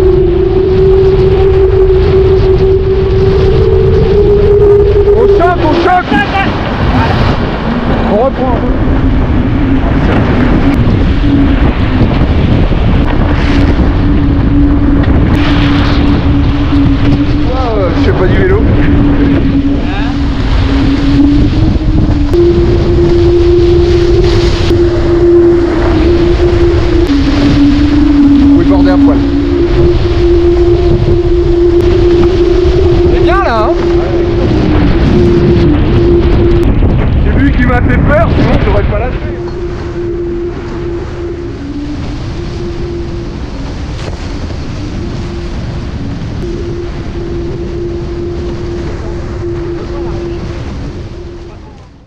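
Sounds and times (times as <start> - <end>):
humming tone changing pitch: 0.0 - 52.0
water rushing past hull: 0.0 - 52.0
wind buffeting microphone: 0.0 - 52.0.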